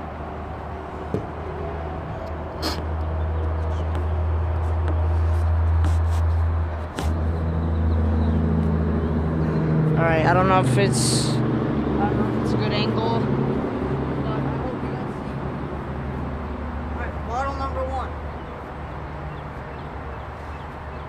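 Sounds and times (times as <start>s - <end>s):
steady low drone: 0.0s - 21.0s.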